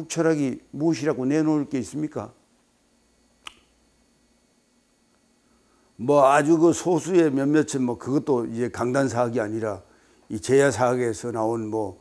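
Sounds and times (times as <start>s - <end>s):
short sharp click: 3.4s - 3.7s.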